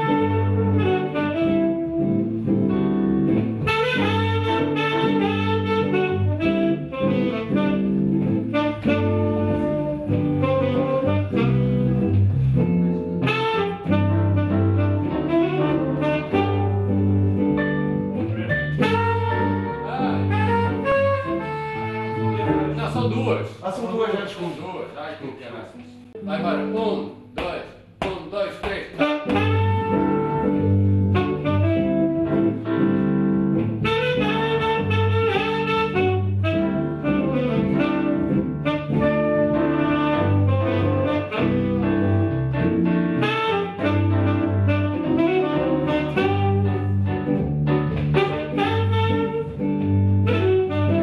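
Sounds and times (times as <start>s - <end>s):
tenor saxophone melody: 0.0s - 23.4s, 25.4s - 27.4s, 29.0s - 51.0s
walking bass line: 0.0s - 23.4s, 25.9s - 51.0s
jazz group playing: 0.0s - 51.0s.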